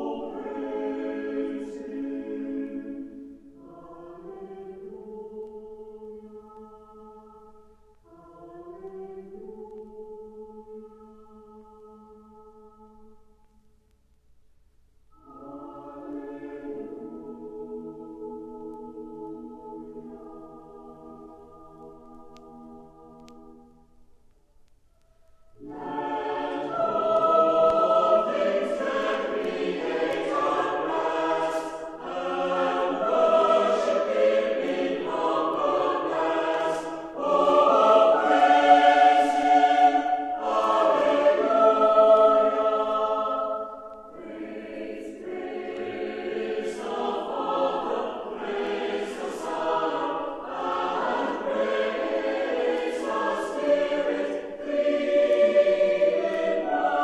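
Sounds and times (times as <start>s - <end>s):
church choir singing: 0.0s - 13.3s, 15.1s - 23.9s, 25.2s - 57.0s.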